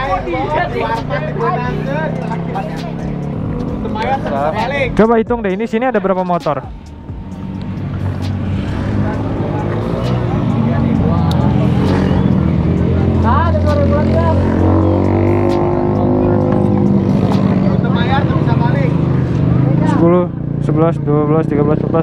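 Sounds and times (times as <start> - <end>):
people talking: 0.0 - 6.8, 8.9 - 14.6, 15.5 - 19.0
motorcycle engines idling: 0.0 - 22.0.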